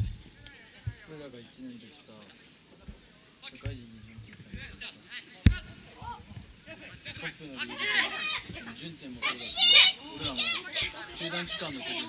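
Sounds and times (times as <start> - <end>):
men shouting and calling out: 2.3 - 12.0.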